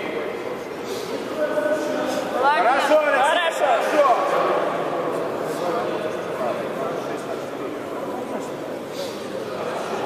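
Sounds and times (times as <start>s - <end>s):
murmur of crowded hall: 0.0s - 10.0s.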